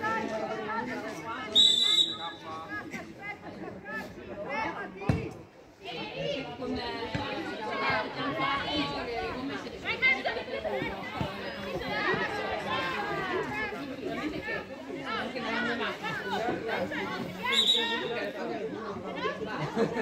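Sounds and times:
overlapping chatter of voices: 0.0 - 20.0.

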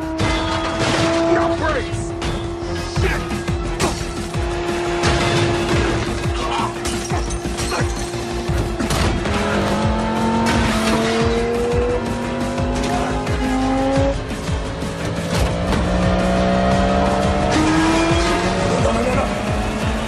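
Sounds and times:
dramatic film music: 0.0 - 20.0
sports car engine accelerating: 0.0 - 20.0.

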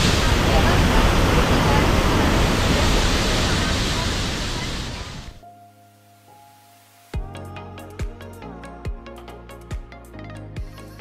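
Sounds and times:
stream rushing over boulders: 0.0 - 5.4.

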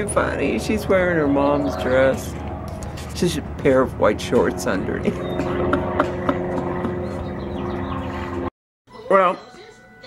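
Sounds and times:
bird chirps: 7.0 - 8.4.

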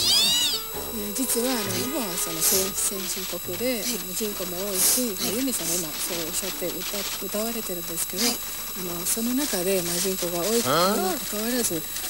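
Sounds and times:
high-pitched meow-like call: 0.0 - 3.3
woman speaking: 0.0 - 12.0.

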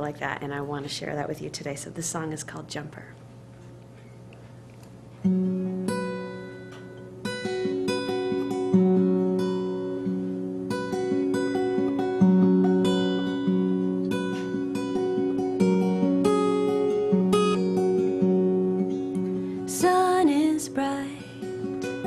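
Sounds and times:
acoustic guitar picking: 5.0 - 22.0.

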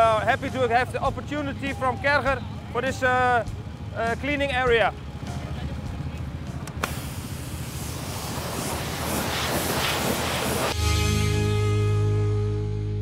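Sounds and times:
low steady rumble: 0.0 - 12.2
pressure washer spray hissing: 6.8 - 10.8
music with guitar: 10.7 - 13.0.

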